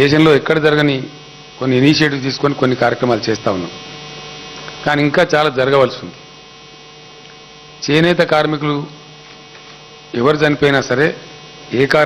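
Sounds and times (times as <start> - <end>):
man speaking: 0.0 - 3.8, 4.8 - 6.2, 7.8 - 9.0, 10.1 - 12.0
electrical mains hum: 0.0 - 12.0.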